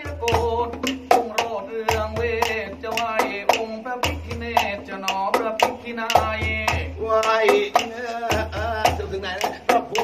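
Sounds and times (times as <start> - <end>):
man singing melismatic melody: 0.0 - 10.0.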